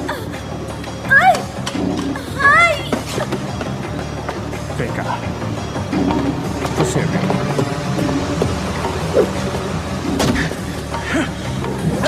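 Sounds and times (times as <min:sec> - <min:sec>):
film music with low notes: 0:00.0 - 0:12.0.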